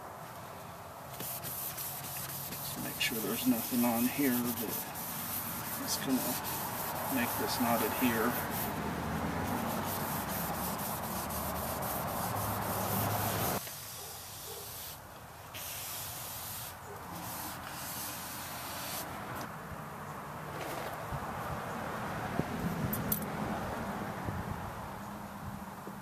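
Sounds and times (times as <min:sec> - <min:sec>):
cloth rag rubbing painted panel: 0:01.1 - 0:08.8, 0:09.4 - 0:15.0, 0:15.6 - 0:19.0.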